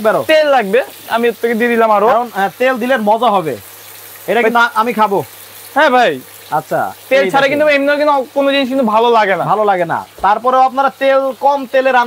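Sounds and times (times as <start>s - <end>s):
person talking: 0.0s - 3.6s, 4.3s - 12.0s
fish sizzling in oil: 0.0s - 12.0s.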